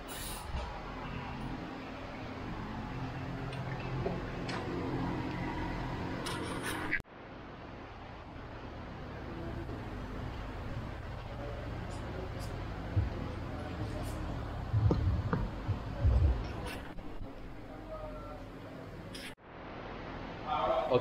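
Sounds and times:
workshop hum: 0.0s - 21.0s.

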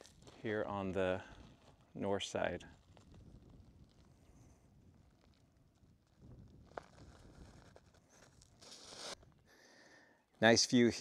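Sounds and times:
soft rustle: 2.6s - 9.4s.

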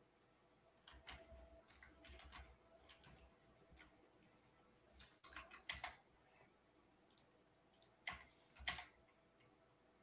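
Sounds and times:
faint clicks: 7.1s - 9.5s.

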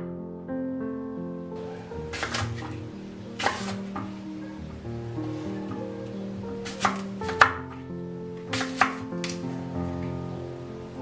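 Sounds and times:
knife slicing apple on board: 2.1s - 2.8s, 3.4s - 4.1s, 6.6s - 7.6s, 8.5s - 9.4s.

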